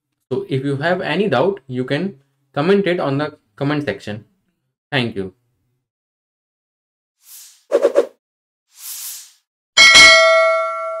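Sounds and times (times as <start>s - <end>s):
bell ringing: 9.8s - 11.0s.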